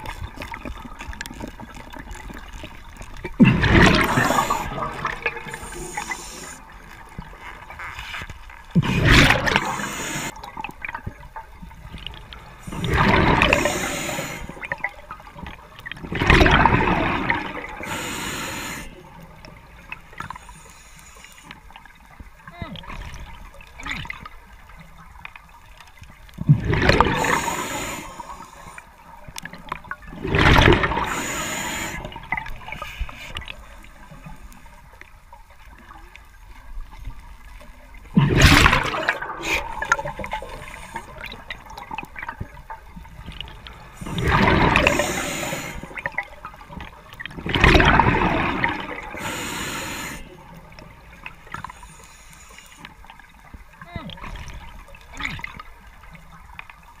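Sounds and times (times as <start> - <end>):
diver exhaling bubbles underwater: 3.4 - 6.6, 12.6 - 14.8, 26.5 - 28.4, 38.1 - 42.6, 44.0 - 46.3, 47.4 - 50.2.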